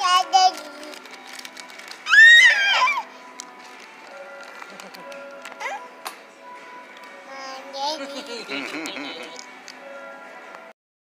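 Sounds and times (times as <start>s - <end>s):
faint background music: 0.0s - 10.8s
baby squealing: 2.1s - 3.1s.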